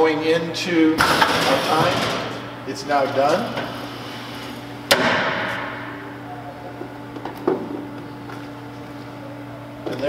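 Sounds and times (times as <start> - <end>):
steady machine hum: 0.0 - 10.0.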